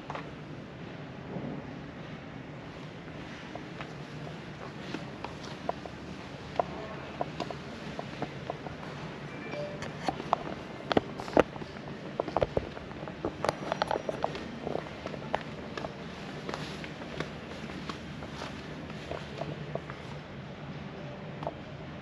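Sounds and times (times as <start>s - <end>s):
footsteps on concrete floor: 13.3s - 20.1s.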